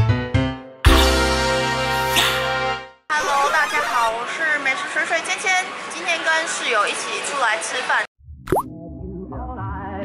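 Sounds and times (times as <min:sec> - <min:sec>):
background music: 0:00.0 - 0:03.0
cartoon plop sound effect: 0:08.5 - 0:08.7.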